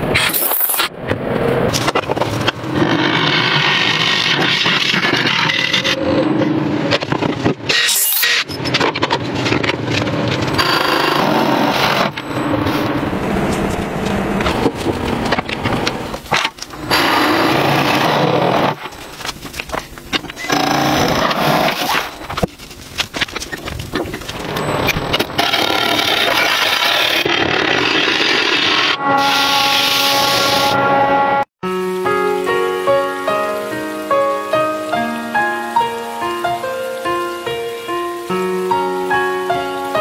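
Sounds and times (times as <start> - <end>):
tool scraping spinning wood: 10.4 - 19.2, 19.8 - 22.5, 23.1 - 30.6
turning tool cutting spinning wood: 20.1 - 22.4, 23.6 - 30.6.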